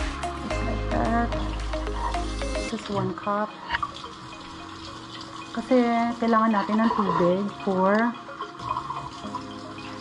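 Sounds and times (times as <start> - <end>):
faucet filling plastic cup: 3.7 - 10.0.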